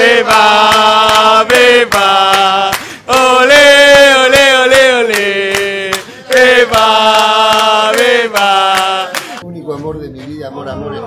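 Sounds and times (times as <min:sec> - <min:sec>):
men chanting: 0:00.0 - 0:09.4
hand claps: 0:00.0 - 0:10.4.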